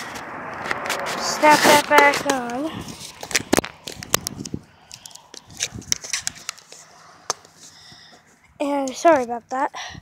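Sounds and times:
phone handling clicks and rubs: 0.7s - 7.8s.

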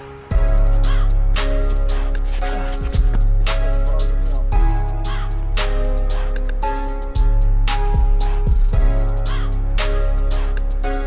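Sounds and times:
music with deep bass beat: 0.3s - 11.0s.

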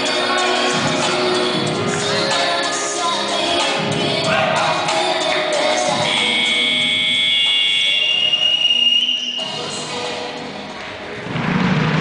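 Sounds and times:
dance music with held high note: 0.0s - 11.2s.

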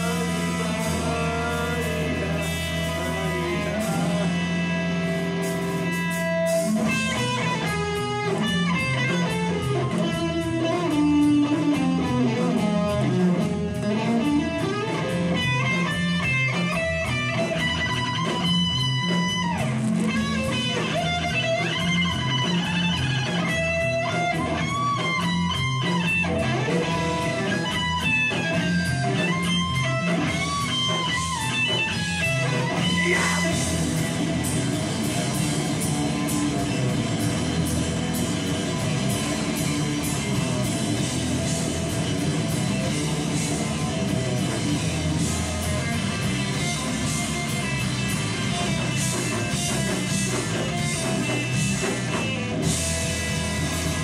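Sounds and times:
live rock band playing: 0.0s - 54.0s.

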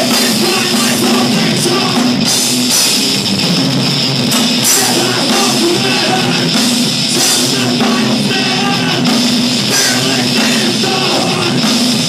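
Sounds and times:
distorted electric guitar: 0.0s - 12.0s
drum kit: 0.0s - 12.0s.

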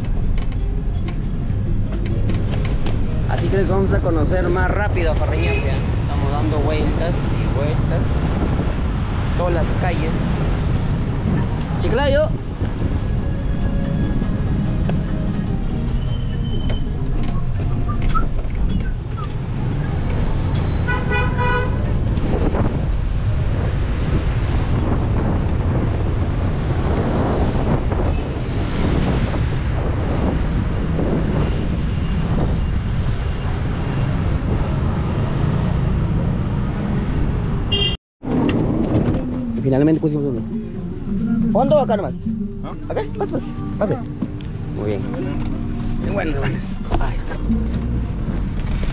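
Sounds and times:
minibus engine and road noise: 0.0s - 48.9s
vehicle horn short toots: 20.8s - 21.8s, 37.7s - 38.0s.

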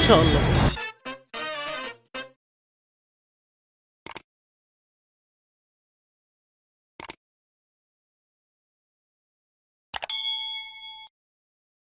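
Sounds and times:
mouse clicks: 7.0s - 7.2s
bell ding: 10.1s - 11.1s.

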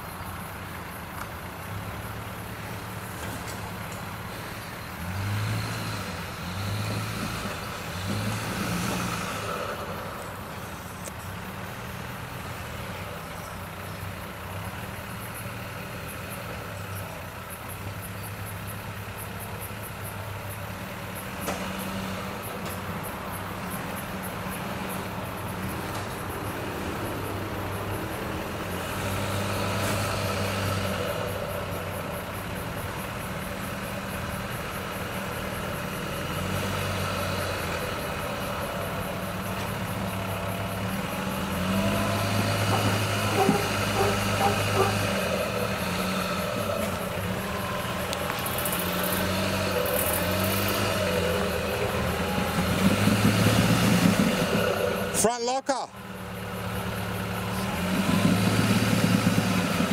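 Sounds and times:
diesel engine running at low revs: 0.0s - 59.9s.

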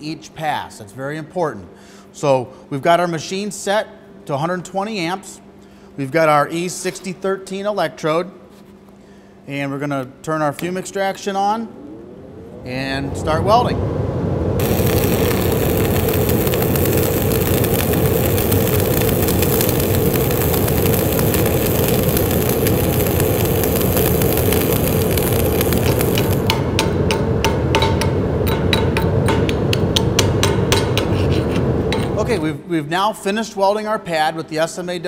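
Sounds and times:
fume extractor drone: 11.6s - 28.5s
welding arc crackling: 14.6s - 26.9s.

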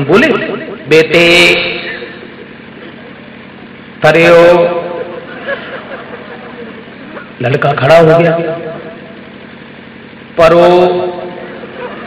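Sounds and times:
man speaking: 0.0s - 2.3s, 7.4s - 9.0s, 10.4s - 11.4s
steady background hiss: 0.0s - 12.0s.

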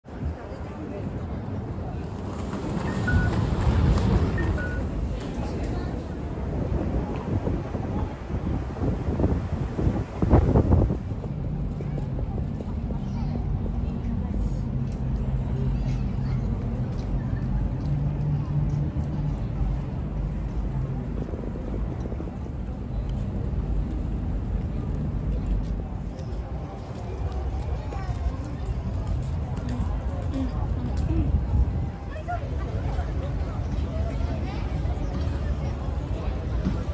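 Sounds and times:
crowd rumble: 0.0s - 36.9s
low traffic rumble: 0.0s - 36.9s.

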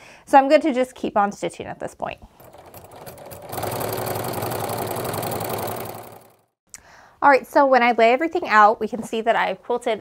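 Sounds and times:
sewing machine stitching: 2.3s - 6.5s.

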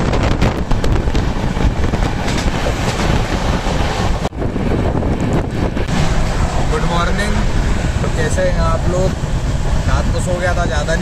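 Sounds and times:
train wheels rumbling on track: 0.0s - 11.0s
wind rushing on microphone: 0.0s - 11.0s.

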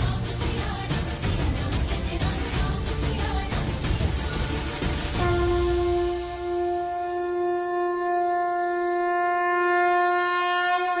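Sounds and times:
wind instrument holding a note: 5.2s - 11.0s.

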